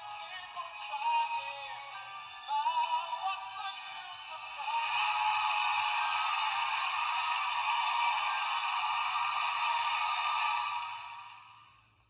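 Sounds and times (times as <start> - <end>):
audience cheering through small speaker: 4.1 - 11.7.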